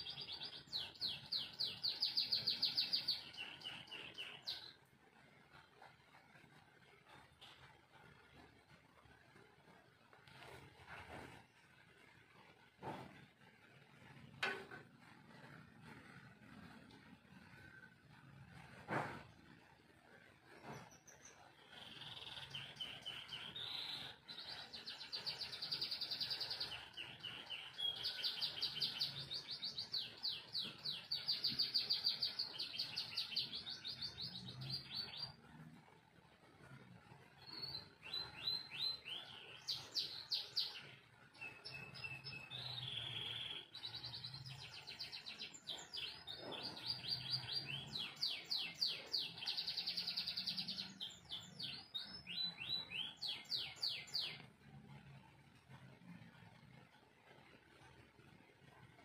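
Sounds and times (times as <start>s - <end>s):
canary singing trills: 0.0s - 5.5s, 20.5s - 35.7s, 36.6s - 55.1s.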